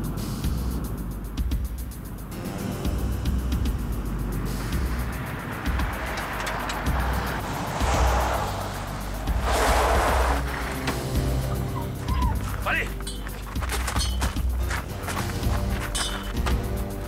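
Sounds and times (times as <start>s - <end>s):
background music: 0.0s - 17.0s
vehicles driving on gravel: 0.0s - 17.0s
car passing on gravel: 2.4s - 17.0s.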